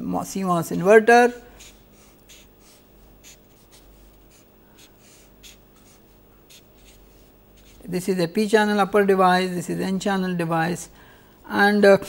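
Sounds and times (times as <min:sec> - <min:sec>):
marker pen scratching on paper: 0:01.5 - 0:07.9.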